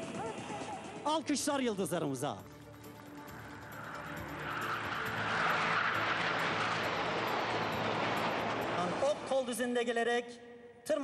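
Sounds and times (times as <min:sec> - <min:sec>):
jet engines rushing past: 0:02.7 - 0:09.8.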